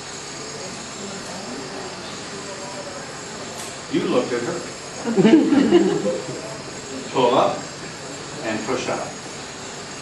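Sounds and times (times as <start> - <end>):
faint murmured voices: 0.0 - 10.0
room tone hiss: 0.0 - 10.0.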